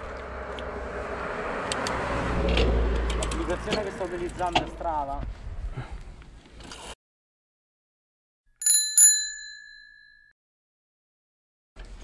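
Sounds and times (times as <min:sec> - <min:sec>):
bicycle bell ringing: 0:08.6 - 0:10.4.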